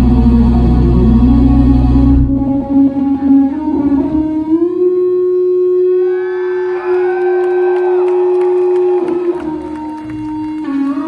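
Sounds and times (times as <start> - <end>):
electric bass sliding note: 0.0 - 6.0.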